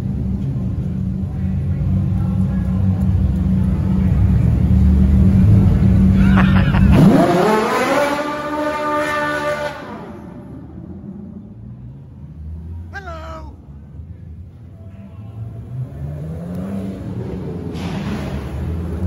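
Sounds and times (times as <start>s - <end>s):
sports car engine revving: 2.9s - 12.9s, 15.4s - 19.0s.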